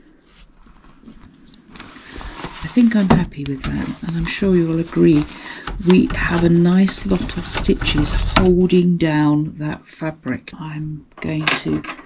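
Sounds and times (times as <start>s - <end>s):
fabric rustling: 0.0s - 8.8s.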